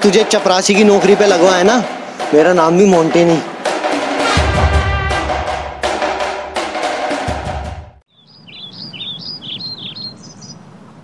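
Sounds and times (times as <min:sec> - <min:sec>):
background music with percussion: 0:00.0 - 0:08.0
birds chirping: 0:08.1 - 0:11.0.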